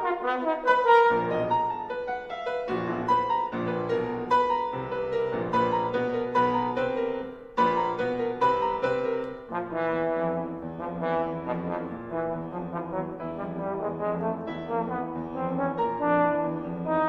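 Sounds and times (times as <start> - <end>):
trombone: 0.0 - 2.0, 9.4 - 17.0
piano: 0.0 - 17.0.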